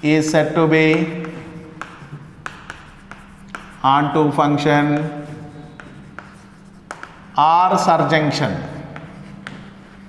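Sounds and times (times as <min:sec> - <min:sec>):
chalk scratching on blackboard: 0:00.0 - 0:10.0
chalk tapping on board: 0:00.1 - 0:10.0.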